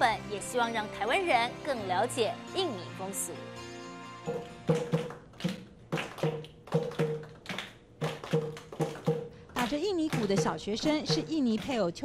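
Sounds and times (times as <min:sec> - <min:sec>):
hand drum beats: 0:04.3 - 0:07.4, 0:08.0 - 0:11.8.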